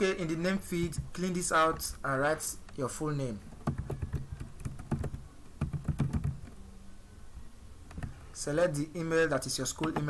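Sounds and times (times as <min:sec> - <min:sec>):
keyboard typing: 0:03.5 - 0:06.6.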